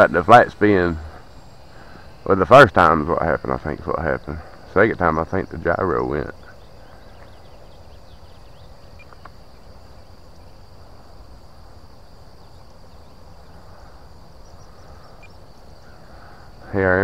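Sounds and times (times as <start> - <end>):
crickets chirping drone: 0.0 - 17.0
faint chirps and ticks: 0.0 - 17.0.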